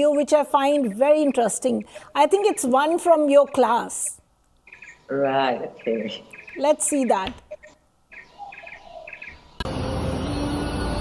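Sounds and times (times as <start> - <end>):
songbird chirping trills: 0.3 - 9.6.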